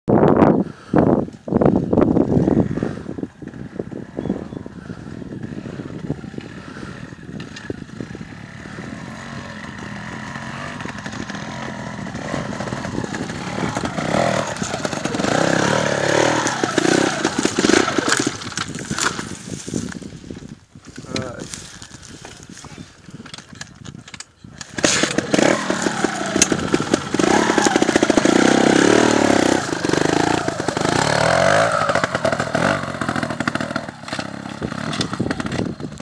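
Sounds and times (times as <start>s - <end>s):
motorcycle engine revving: 2.2s - 19.5s, 24.6s - 36.0s.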